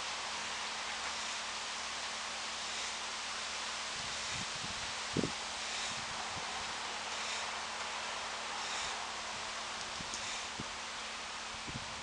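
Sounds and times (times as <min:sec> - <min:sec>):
breeze hissing: 0:00.0 - 0:12.0
wind thumps on microphone: 0:04.0 - 0:06.6, 0:11.6 - 0:12.0.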